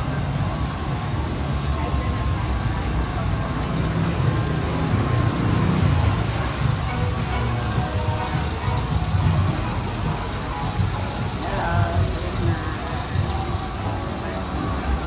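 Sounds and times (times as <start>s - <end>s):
cars driving by: 0.0s - 15.0s
music playing: 0.0s - 15.0s
scattered voices: 0.0s - 15.0s.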